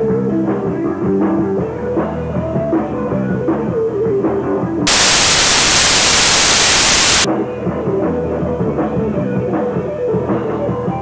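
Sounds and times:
loud static hiss: 4.9s - 7.3s.

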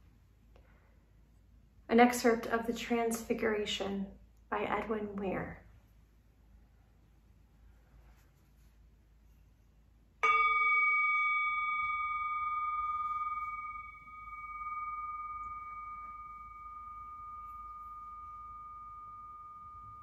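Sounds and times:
singing bowl ringing: 10.2s - 20.0s.

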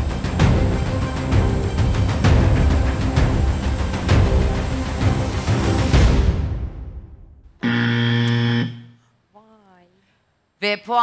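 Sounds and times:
tense music with drum hits: 0.0s - 7.6s
loud game-show buzzer: 7.6s - 9.0s.

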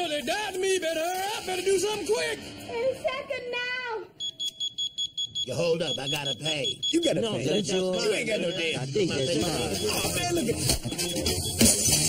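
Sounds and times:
high-pitched electronic alarm beeping: 4.2s - 12.0s.

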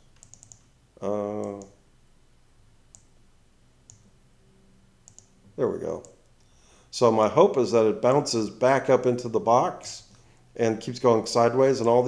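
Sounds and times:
computer mouse clicks: 0.0s - 0.7s, 1.4s - 1.8s, 2.9s - 3.1s, 3.9s - 4.1s, 5.0s - 5.3s.

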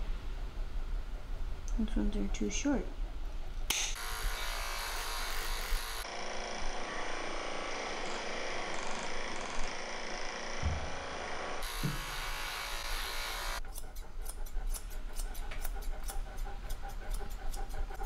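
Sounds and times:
electric pet clippers running: 3.9s - 13.7s
scissors snipping: 13.7s - 17.7s.

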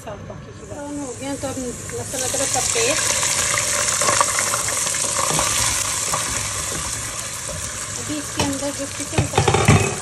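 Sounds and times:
paste sizzling in hot oil: 0.7s - 10.0s
wooden spoon knocking pot: 5.2s - 10.0s.

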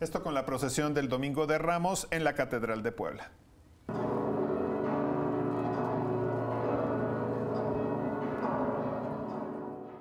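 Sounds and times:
church bells ringing: 3.9s - 10.0s.

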